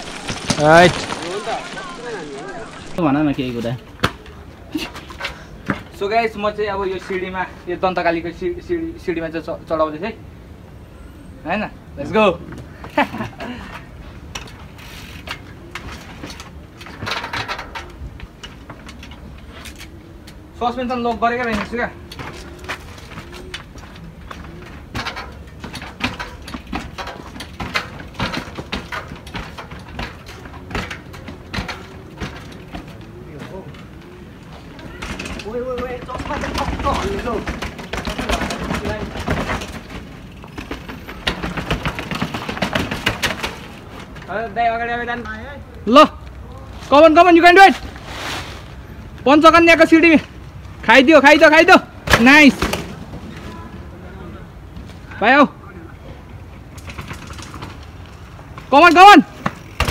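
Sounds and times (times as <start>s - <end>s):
voices: 0.0s - 5.1s, 29.4s - 40.0s
bike clattering on concrete steps: 0.0s - 10.1s, 12.0s - 48.0s, 49.1s - 59.9s.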